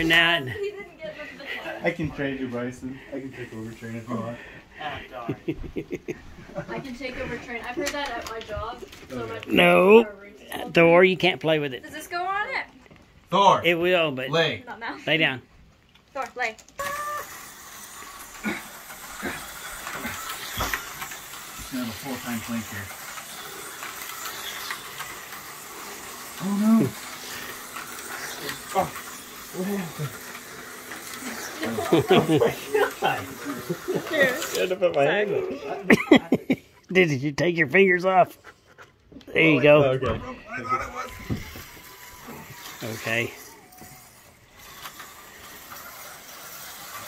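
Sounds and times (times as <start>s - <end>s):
toy train motor whir: 0.0s - 0.8s, 1.5s - 5.4s, 6.6s - 12.7s, 16.1s - 36.0s, 38.6s - 47.0s.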